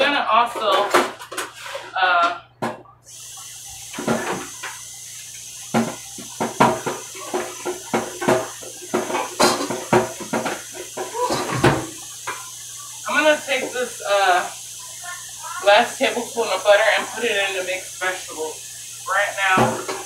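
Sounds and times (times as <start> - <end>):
dishes and utensils clattering: 0.3 - 2.9, 5.7 - 12.5
steady hiss: 3.1 - 20.0.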